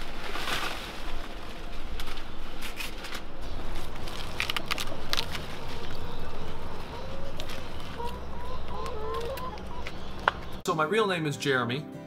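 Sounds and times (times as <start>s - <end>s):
hens clucking: 4.9s - 10.6s.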